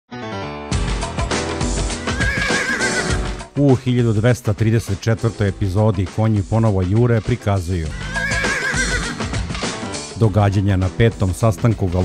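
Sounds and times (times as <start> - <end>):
background music: 0.1 - 12.0
horse whinnying: 2.0 - 3.4, 7.8 - 9.4.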